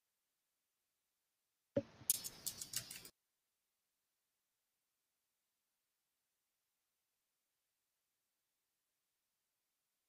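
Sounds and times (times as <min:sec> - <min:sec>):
sharp clicks: 0:02.1 - 0:03.1.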